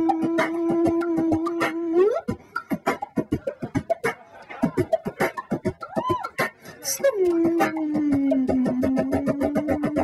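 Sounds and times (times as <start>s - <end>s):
beatboxing drum sounds: 0.0s - 10.0s.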